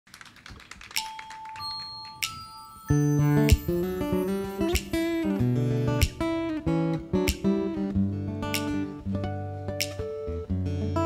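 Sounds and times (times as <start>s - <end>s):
thin steady high tone: 1.4s - 5.6s.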